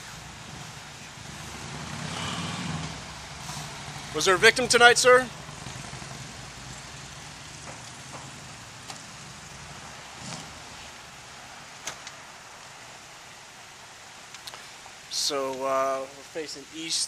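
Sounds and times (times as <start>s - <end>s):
car engine idling: 0.0s - 15.3s
street noise: 0.0s - 17.0s
faint clicks: 14.3s - 14.7s.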